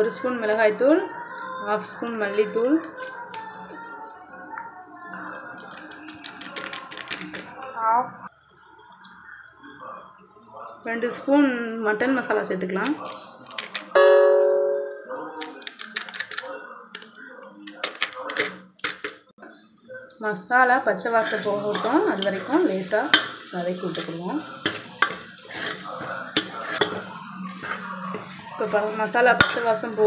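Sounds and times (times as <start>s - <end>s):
spoon ringing on metal pot: 14.0s - 15.2s
spoon scraping metal pot: 17.7s - 19.2s, 21.0s - 30.0s
paste sizzling in oil: 20.9s - 30.0s
spoon clinking on pot: 21.2s - 27.8s, 29.4s - 29.8s.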